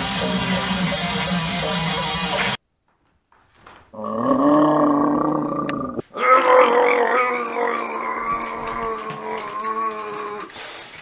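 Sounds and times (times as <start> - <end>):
man growling vocals: 4.0 - 10.5.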